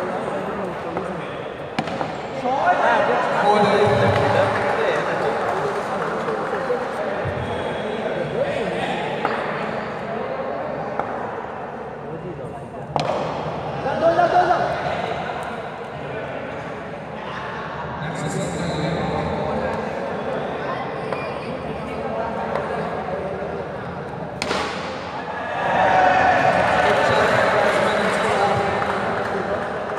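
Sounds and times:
players' voices echoing: 0:00.0 - 0:29.9.

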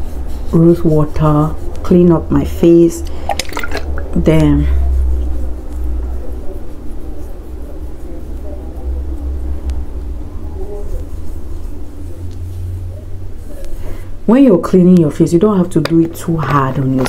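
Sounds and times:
low background rumble: 0:00.0 - 0:17.0.

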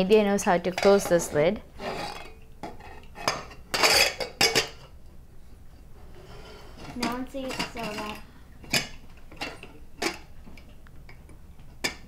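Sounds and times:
lid scraping on pot: 0:01.8 - 0:04.5, 0:06.1 - 0:07.0.

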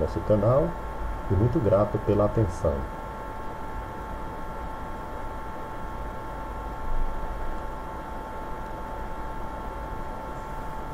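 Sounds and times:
recording hum and hiss: 0:00.0 - 0:10.9
thin whine: 0:00.0 - 0:10.9.

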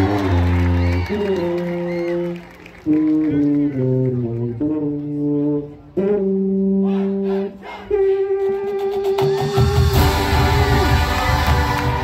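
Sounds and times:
marching band brass chords: 0:00.0 - 0:12.0.

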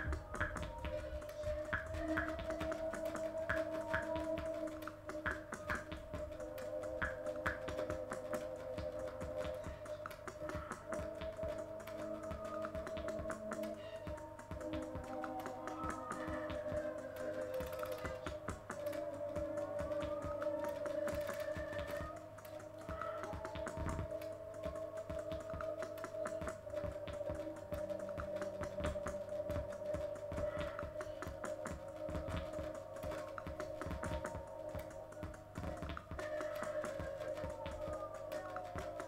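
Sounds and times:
dense irregular clicking: 0:00.0 - 0:39.0
synthesizer drone: 0:00.0 - 0:39.0.

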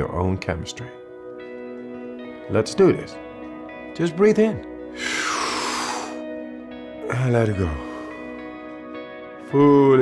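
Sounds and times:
soft background music: 0:00.0 - 0:10.0
deep forceful inhale: 0:05.0 - 0:06.2.

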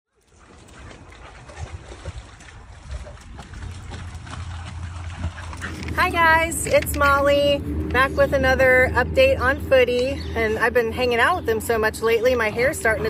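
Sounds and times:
low rumble: 0:01.6 - 0:13.0.

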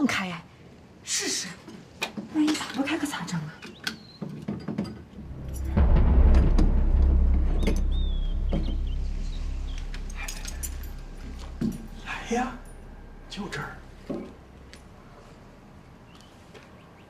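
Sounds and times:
heavy door rumbling open: 0:05.2 - 0:15.8.

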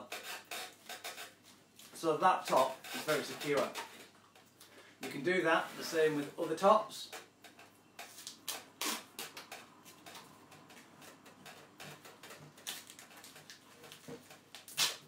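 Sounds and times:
duct tape crackling and tapping: 0:00.0 - 0:05.4, 0:06.6 - 0:15.0.

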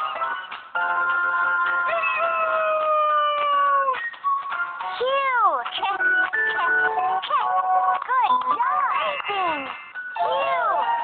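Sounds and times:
cartoon music with synth effects: 0:00.0 - 0:11.0.

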